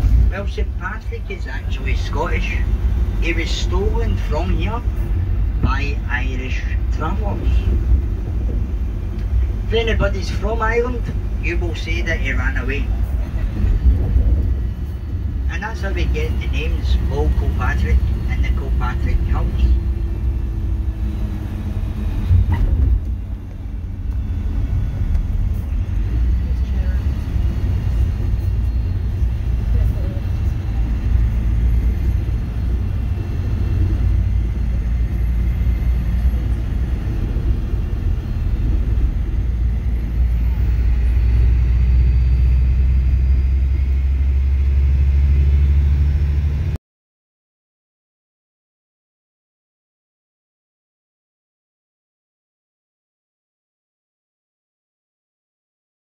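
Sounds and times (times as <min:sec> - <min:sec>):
coach engine and road rumble: 0:00.0 - 0:46.8.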